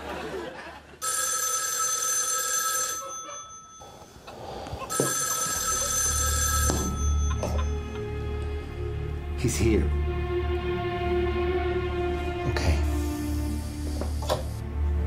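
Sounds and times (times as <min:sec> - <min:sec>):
telephone bell ringing: 0:01.0 - 0:04.2, 0:04.9 - 0:07.9
low background music: 0:05.6 - 0:15.0.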